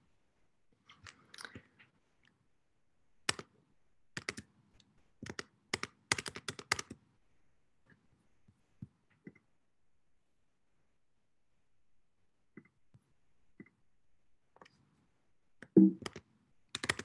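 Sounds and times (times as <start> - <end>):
computer keyboard clicks: 3.3 - 3.5, 4.2 - 4.5, 5.2 - 7.0, 15.6 - 17.0.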